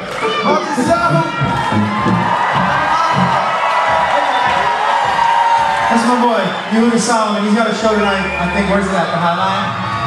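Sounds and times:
live band music: 0.0s - 9.4s
concert crowd cheering: 0.0s - 10.0s.

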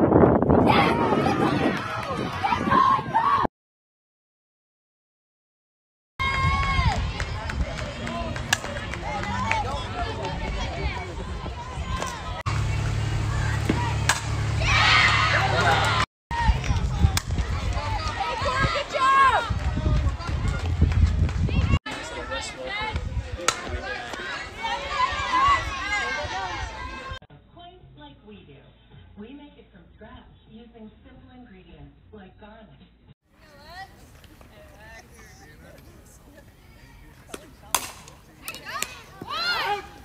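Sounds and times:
crowd shouting and cheering: 0.5s - 3.5s, 6.2s - 27.2s, 38.6s - 40.0s
spectators chatting: 6.8s - 14.7s, 21.9s - 27.2s, 33.4s - 40.0s
bat cracking ball: 13.5s - 15.1s, 37.3s - 39.3s.

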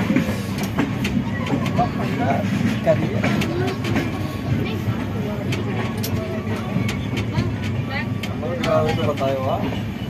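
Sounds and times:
train clicks and knocks: 0.0s - 10.0s
train running rumble: 0.0s - 10.0s
people talking: 1.2s - 9.8s.

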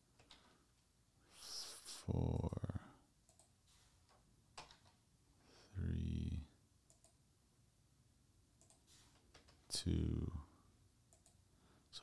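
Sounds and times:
keyboard and mouse clicks: 0.2s - 0.5s, 3.3s - 5.0s, 6.9s - 7.2s, 8.6s - 9.7s, 11.1s - 11.4s.

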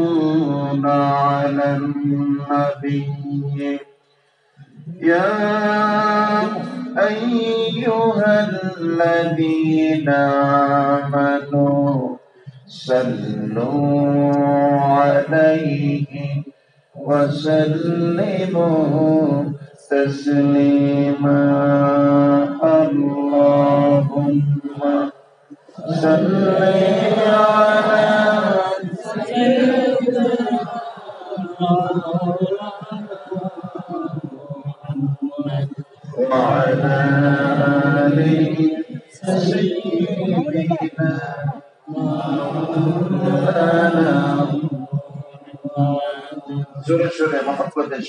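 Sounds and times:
man chanting: 0.0s - 3.9s, 4.6s - 48.0s.

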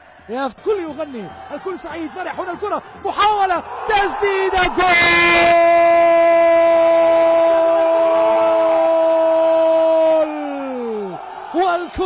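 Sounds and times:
man shouting goal: 2.3s - 12.0s.

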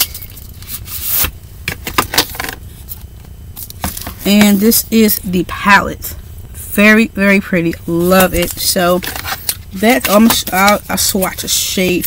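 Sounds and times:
cardboard and plastic handling noise: 0.0s - 4.6s, 8.3s - 12.0s.

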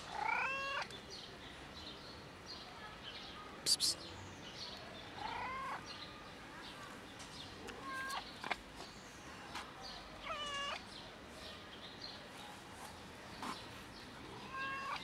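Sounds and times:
cat meowing: 0.1s - 0.8s, 5.2s - 5.8s, 7.7s - 8.2s, 10.2s - 10.8s, 14.4s - 15.0s.

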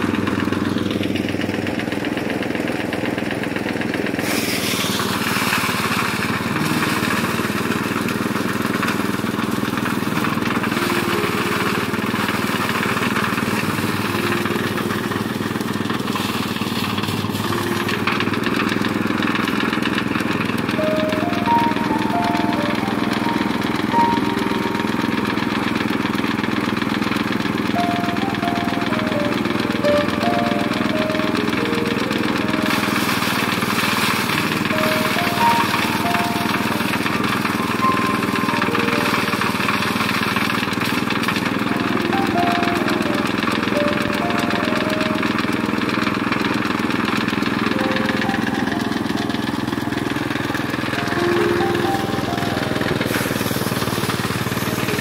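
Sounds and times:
rice thresher engine running: 0.0s - 55.0s
rice stalks hissing in drum: 4.0s - 24.4s, 25.2s - 42.9s, 49.4s - 55.0s
background music: 10.6s - 12.5s, 20.7s - 26.1s, 27.7s - 33.4s, 34.5s - 40.2s, 41.7s - 46.3s, 47.7s - 53.1s.

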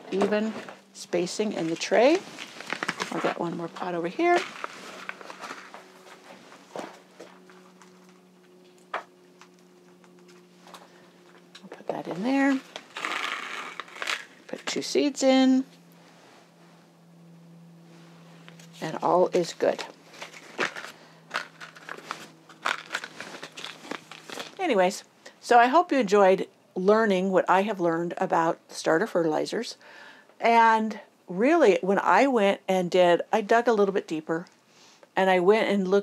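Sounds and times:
plastic pot rustles and clicks: 1.6s - 3.4s, 19.7s - 24.7s
paper packet crinkling: 1.6s - 6.6s, 12.1s - 14.7s, 19.8s - 24.6s.

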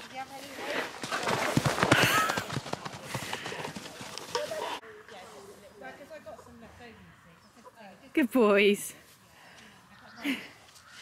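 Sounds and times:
horse hoofbeats on grass: 0.2s - 4.8s.

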